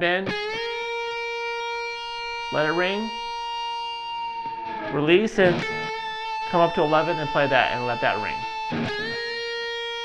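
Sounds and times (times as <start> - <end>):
electric guitar bent note ringing: 4.4 - 6.6.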